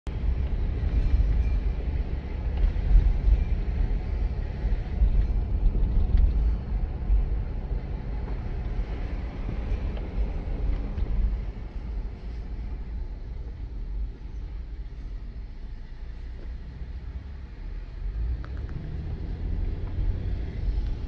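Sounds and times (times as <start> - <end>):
car engine and tyre rumble: 0.1 - 21.0.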